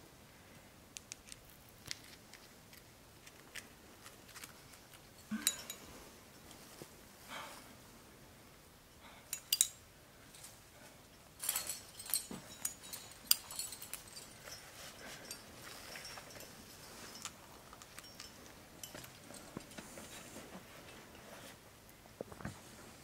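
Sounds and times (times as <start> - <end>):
metal climbing gear clinking: 4.3 - 5.9, 9.3 - 10.6, 11.3 - 21.3.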